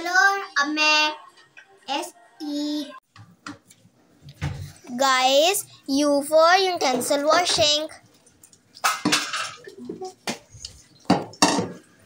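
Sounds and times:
dishes clinking in steel sink: 8.8s - 10.4s, 11.0s - 12.0s.

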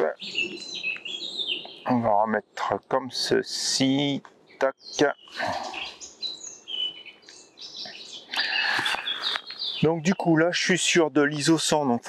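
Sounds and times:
birds chirping and whistling: 0.0s - 11.6s
brief rustle: 8.6s - 9.6s.

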